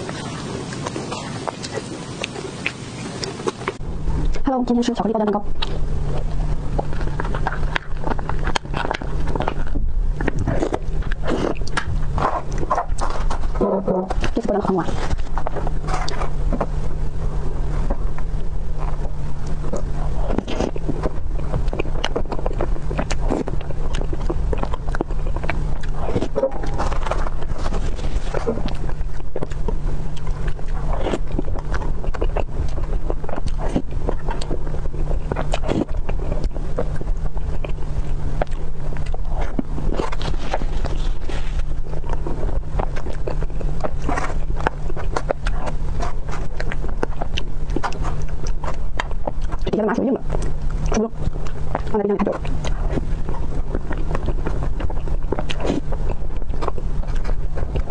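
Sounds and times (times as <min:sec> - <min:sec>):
steady low hum: 0:00.0 - 0:57.9
wet chewing mouth sounds: 0:00.0 - 0:57.9.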